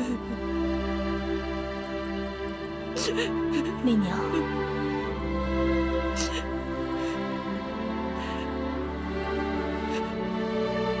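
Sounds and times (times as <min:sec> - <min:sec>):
soft sad sustained chords: 0:00.0 - 0:11.0.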